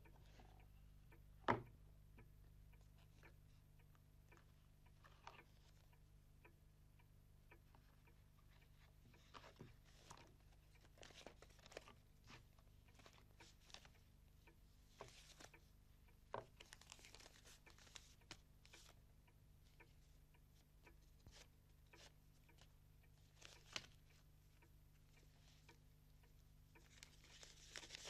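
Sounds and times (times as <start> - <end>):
faint ticks: 0.0 - 28.0
low steady hum: 0.0 - 28.0
paper rustling: 8.8 - 13.9, 16.3 - 19.0, 23.3 - 24.0, 26.8 - 28.0.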